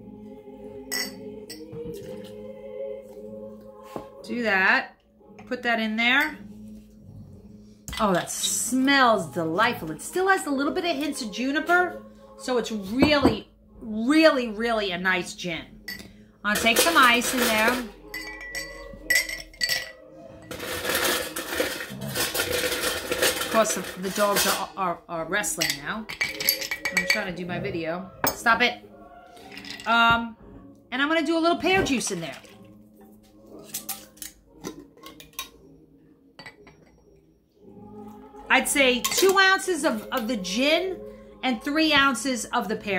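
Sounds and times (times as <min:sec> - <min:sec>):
metal lid scraping on glass jar: 0:33.6 - 0:35.6, 0:39.0 - 0:40.3.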